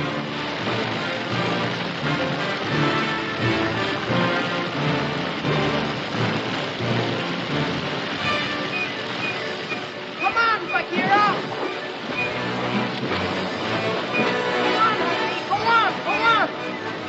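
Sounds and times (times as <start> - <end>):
orchestral film score: 0.0 - 17.0.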